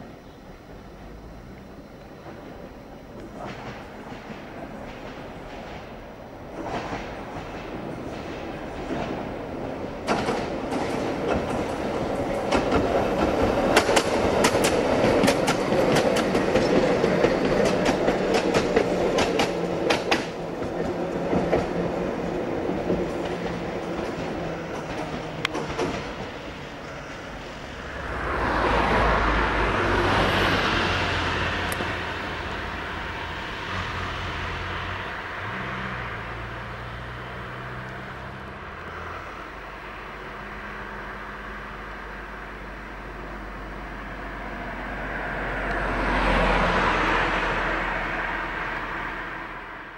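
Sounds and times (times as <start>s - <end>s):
tram wheels clicking over rail joints: 0.6s - 49.0s
van passing by whoosh: 27.0s - 39.8s, 43.5s - 49.9s.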